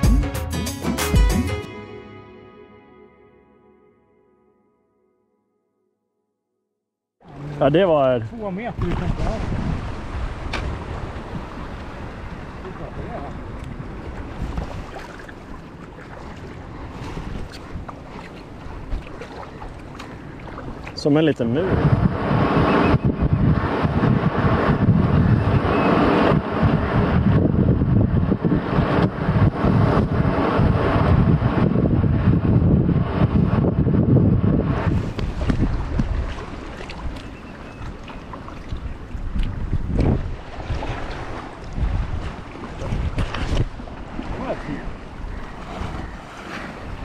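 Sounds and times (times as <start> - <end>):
water lapping: 7.2 - 21.7, 34.9 - 47.0
wind buffeting microphone: 7.4 - 47.0
kayak paddle splashing: 8.8 - 21.2, 34.9 - 47.0.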